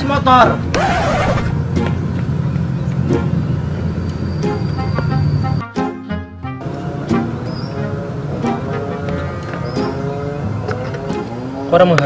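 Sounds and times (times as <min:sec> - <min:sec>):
scooter engine running: 0:00.7 - 0:01.6.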